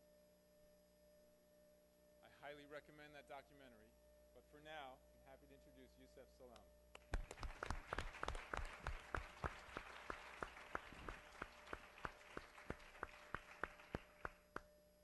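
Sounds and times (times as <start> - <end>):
audience applauding: 7.0 - 14.6.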